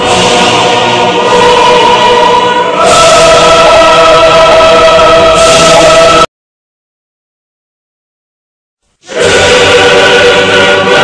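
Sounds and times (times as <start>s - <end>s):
choir singing sustained chords: 0.0s - 6.3s, 9.0s - 11.0s.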